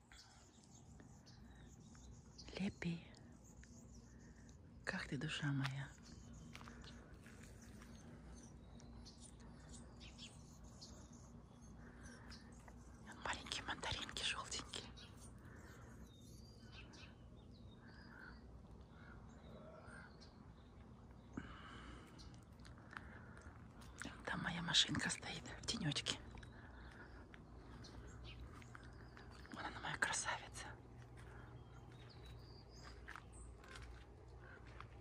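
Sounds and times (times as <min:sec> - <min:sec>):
quiet whispering: 0:00.0 - 0:35.0
faint bird calls: 0:06.0 - 0:35.0.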